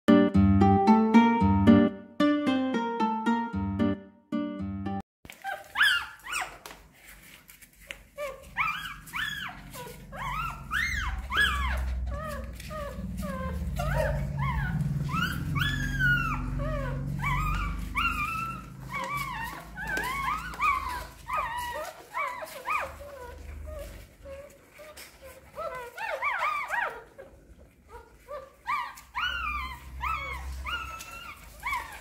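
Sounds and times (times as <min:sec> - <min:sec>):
puppies crying and whimpering: 0:05.3 - 0:07.1, 0:08.0 - 0:32.0
low rumble: 0:10.1 - 0:18.7.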